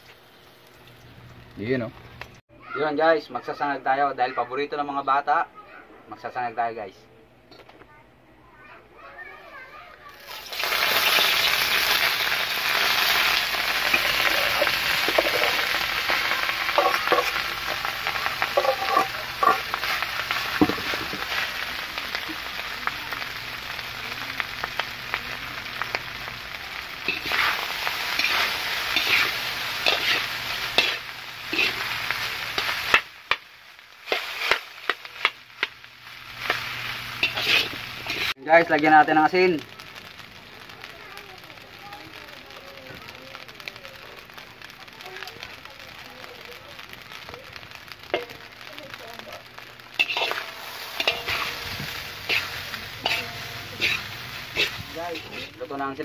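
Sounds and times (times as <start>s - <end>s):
rice sizzling in a pan: 0.0s - 5.4s, 9.0s - 56.0s
spatula scraping metal pan: 37.2s - 38.3s, 50.0s - 55.6s.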